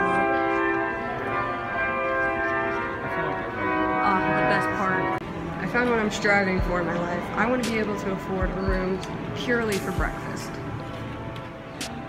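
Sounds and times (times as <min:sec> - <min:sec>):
slow organ music: 0:08.9 - 0:12.0.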